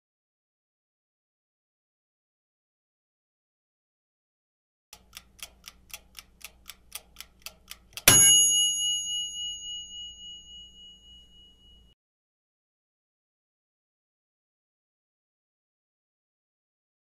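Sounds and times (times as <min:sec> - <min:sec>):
clock ticking: 0:04.9 - 0:08.8
bell ding: 0:08.1 - 0:12.0.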